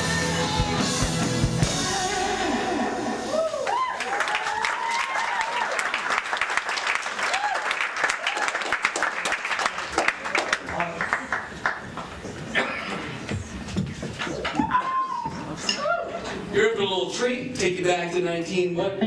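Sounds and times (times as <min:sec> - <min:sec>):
live band playing guitar song: 0:00.0 - 0:03.3
crowd whooping and cheering: 0:02.4 - 0:08.8, 0:14.4 - 0:16.5
audience applause: 0:03.3 - 0:12.5.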